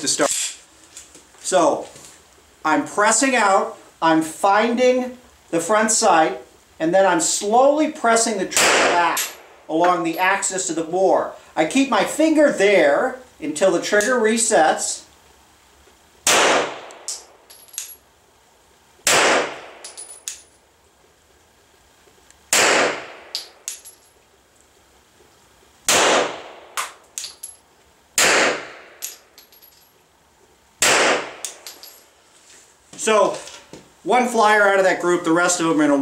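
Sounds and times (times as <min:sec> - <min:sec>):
pistol shots: 0:08.6 - 0:09.4, 0:16.2 - 0:17.4, 0:19.0 - 0:19.8, 0:22.5 - 0:23.5, 0:25.9 - 0:27.0, 0:28.2 - 0:29.1, 0:30.8 - 0:31.6
spent brass clicking and ringing: 0:16.9 - 0:18.0, 0:19.8 - 0:20.5, 0:23.3 - 0:24.2, 0:26.8 - 0:27.6.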